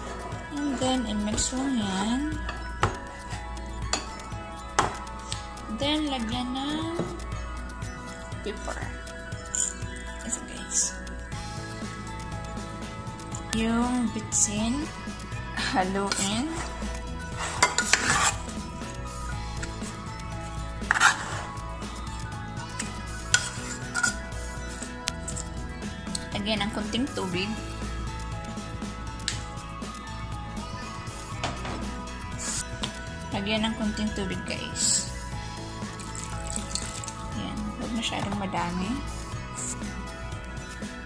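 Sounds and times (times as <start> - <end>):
background music: 0.0 - 41.0
utensil scraping a pot: 15.6 - 18.9, 19.6 - 21.7, 22.7 - 25.6
chicken being stirred in a pot: 17.3 - 18.5.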